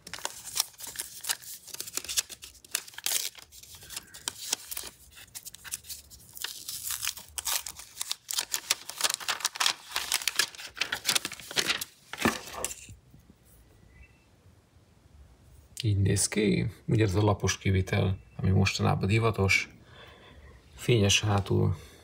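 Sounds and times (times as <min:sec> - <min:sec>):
plastic film crackling as peeled: 0:00.0 - 0:12.8.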